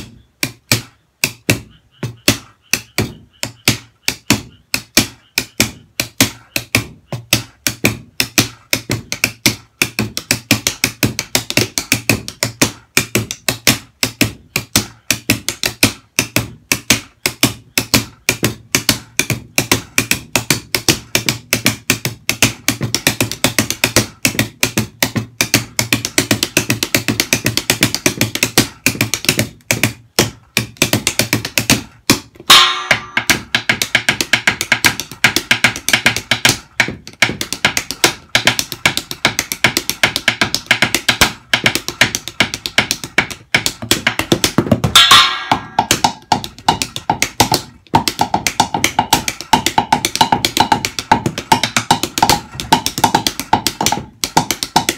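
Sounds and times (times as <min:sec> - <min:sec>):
drumsticks on box drums: 0:00.0 - 0:54.9
ringing drum hit: 0:32.5 - 0:33.3, 0:45.0 - 0:45.8.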